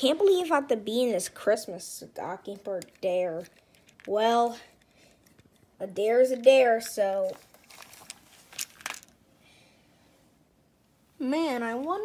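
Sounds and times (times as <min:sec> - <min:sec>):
soft clicks and rustles: 0:02.5 - 0:09.2.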